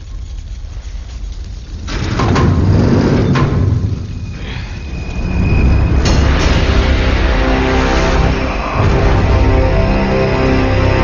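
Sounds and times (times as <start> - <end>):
deep rumble: 0.0 - 11.0
sharp metallic impacts: 5.4 - 10.0.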